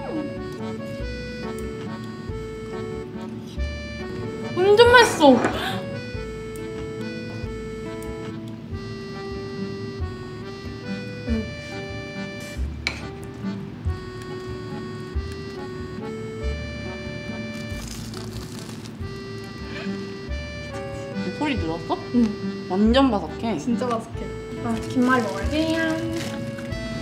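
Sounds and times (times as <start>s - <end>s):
light background music: 0.0s - 27.0s
crunchy bite into fried snack: 17.5s - 19.0s.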